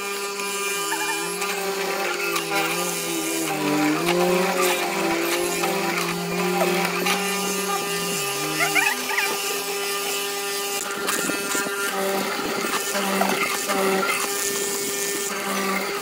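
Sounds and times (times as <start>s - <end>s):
mortiser motor cutting wood: 0.0s - 16.0s.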